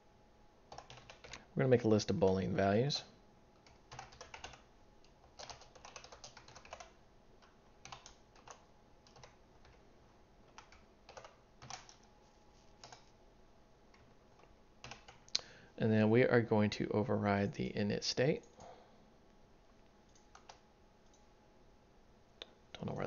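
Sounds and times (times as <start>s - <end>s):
typing on keyboard: 0.7s - 1.4s, 3.6s - 9.8s, 10.5s - 12.1s, 12.8s - 13.1s, 14.8s - 15.3s, 20.1s - 21.2s.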